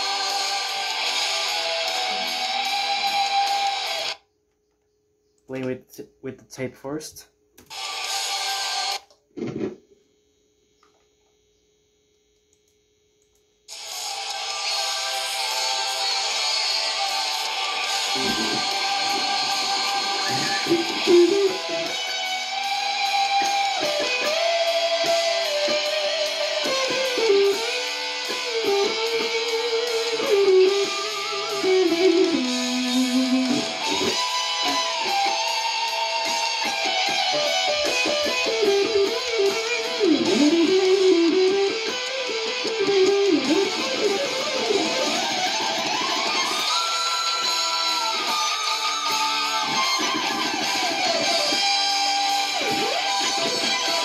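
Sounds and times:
recorded metal band track: 0.0s - 4.2s, 13.8s - 54.0s
electric guitar lead solo: 13.7s - 54.0s.

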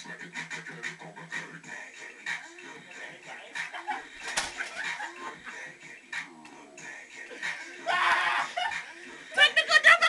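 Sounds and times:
breathy laughter: 3.6s - 5.7s.

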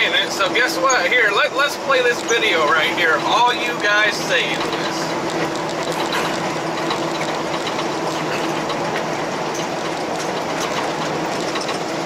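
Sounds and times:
car engine and tyre road noise: 0.0s - 12.0s.

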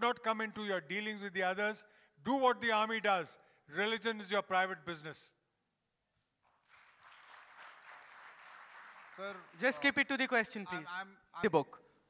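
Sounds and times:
audience applause: 6.6s - 9.9s.

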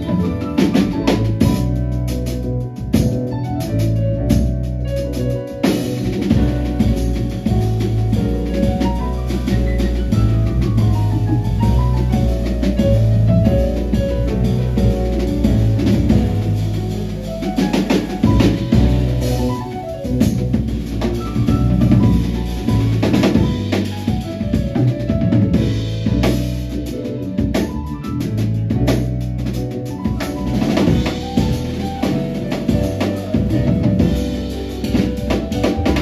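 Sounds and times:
drum kit playing: 0.0s - 36.0s
piano: 0.0s - 36.0s
walking bass guitar: 0.0s - 36.0s.

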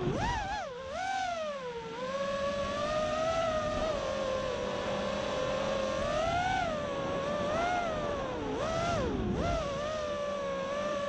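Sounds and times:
quadcopter propellers whining: 0.0s - 11.0s.

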